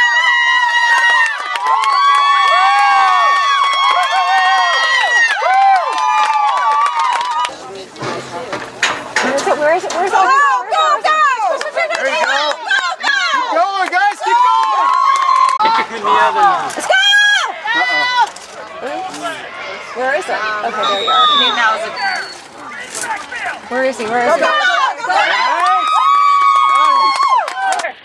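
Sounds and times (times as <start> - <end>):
crowd yelling and cheering: 0.0 - 28.0.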